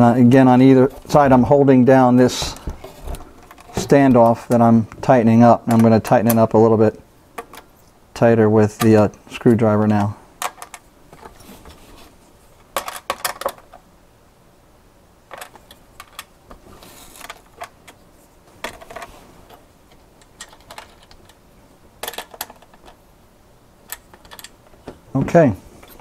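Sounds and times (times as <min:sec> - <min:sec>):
small metal clicks and rattles: 0:18.6 - 0:21.4, 0:22.0 - 0:23.0, 0:23.9 - 0:24.8.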